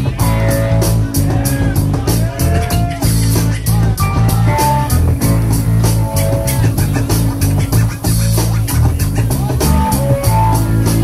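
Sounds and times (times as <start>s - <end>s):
bass guitar: 0.0s - 11.0s
drum kit: 0.0s - 11.0s
electric guitars: 0.0s - 11.0s.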